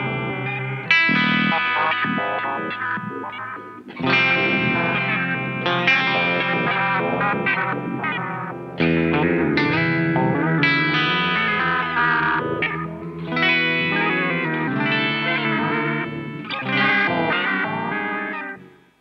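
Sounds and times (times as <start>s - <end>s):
overdriven electric guitar with echo: 0.0s - 19.0s.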